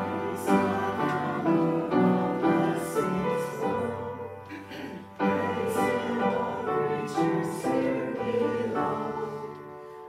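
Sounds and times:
choir singing slow chords: 0.0s - 10.0s
keyboard accompaniment: 0.0s - 10.0s.

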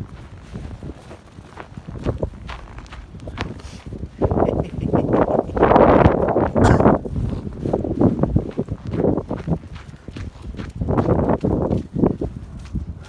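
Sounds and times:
footsteps in snow: 0.0s - 13.0s.

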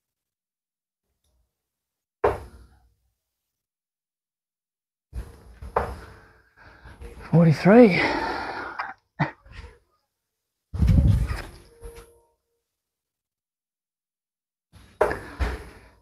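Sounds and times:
dart striking dartboard: 2.2s - 2.6s.

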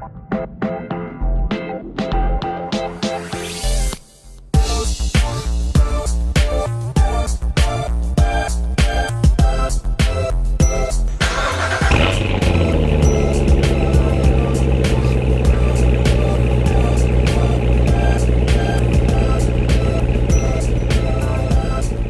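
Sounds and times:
background music: 0.0s - 22.0s
car engine starting and idling: 11.1s - 22.0s.

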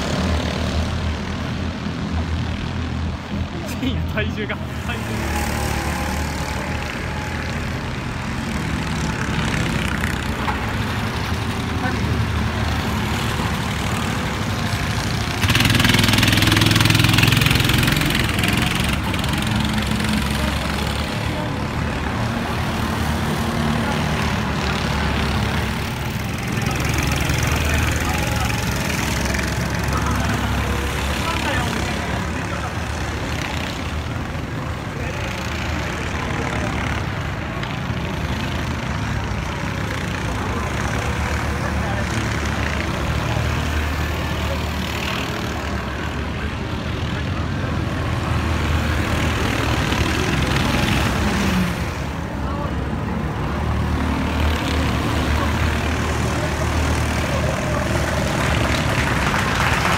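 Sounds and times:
go-kart engines droning: 0.0s - 59.9s.

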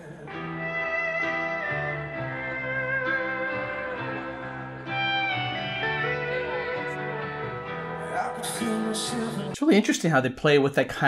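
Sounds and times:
live band playing: 0.1s - 9.6s
steel guitar sliding melody: 0.1s - 9.6s.

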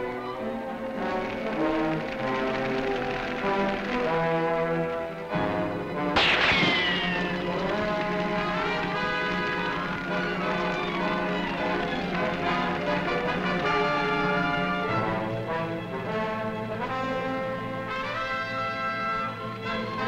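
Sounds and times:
dramatic orchestral music with brass: 0.0s - 20.0s
sudden loud burst: 6.2s - 7.6s.

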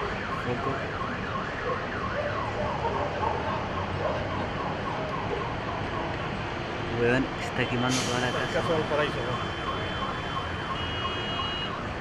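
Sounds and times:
emergency siren yelping: 0.0s - 6.4s.

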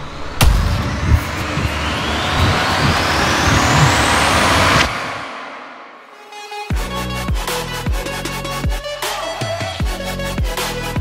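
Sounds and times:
low rumble: 0.0s - 6.1s
rising rushing noise: 0.0s - 6.2s
sharp hit: 0.0s - 6.2s.

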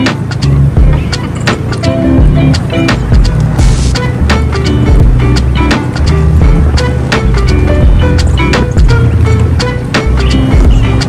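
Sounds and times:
music with drum beat and bass: 0.0s - 11.0s.

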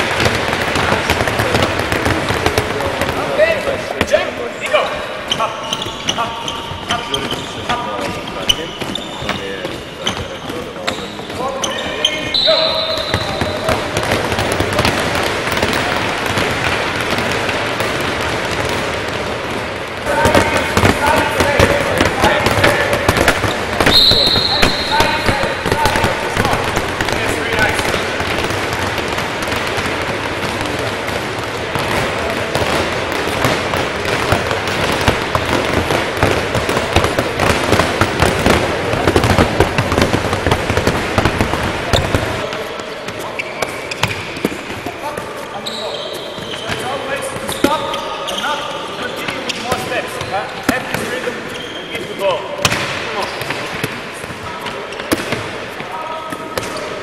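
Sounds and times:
balls bouncing on wooden floor: 0.0s - 4.2s, 5.2s - 48.4s, 49.1s - 57.0s
voices: 19.0s - 28.3s.

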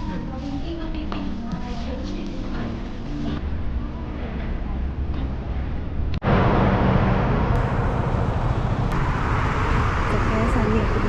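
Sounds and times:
passing traffic rumble: 5.9s - 11.0s.

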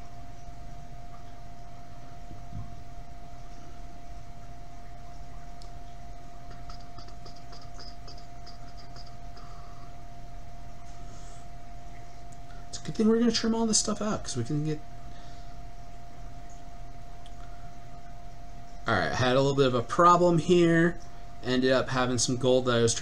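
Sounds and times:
low hum: 0.0s - 23.0s
mid-pitched whine: 0.0s - 23.0s
faint light ticks: 5.6s - 5.8s.

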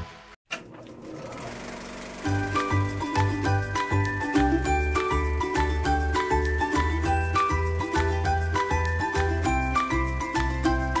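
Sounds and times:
film projector clattering: 1.0s - 2.7s
light tinkling music with beat: 2.3s - 11.0s.

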